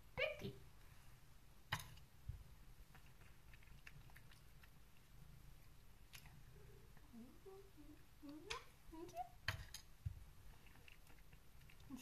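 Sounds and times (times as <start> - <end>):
cat chewing: 2.4 - 7.0, 10.0 - 12.0.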